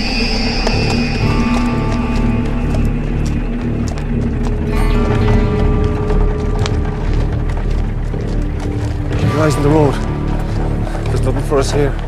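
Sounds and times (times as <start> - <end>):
background music of sustained notes: 0.0 - 12.0.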